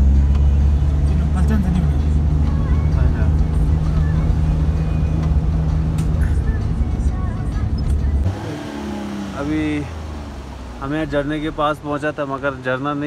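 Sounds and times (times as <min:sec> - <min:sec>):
car engine and road noise: 0:00.0 - 0:13.0.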